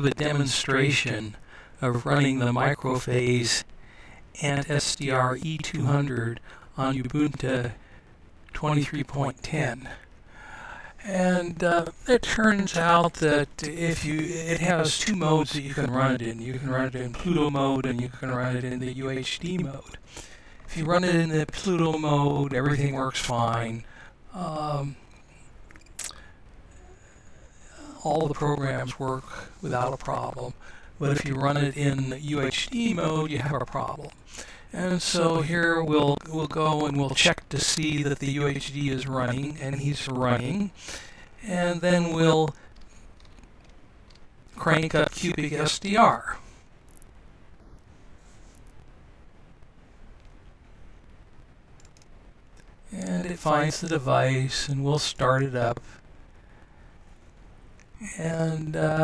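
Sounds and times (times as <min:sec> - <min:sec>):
faint steady hiss: 0:00.0 - 0:59.0
low steady hum: 0:00.0 - 0:59.0
faint clicks: 0:25.0 - 0:26.8, 0:42.5 - 0:44.6, 0:50.1 - 0:52.9.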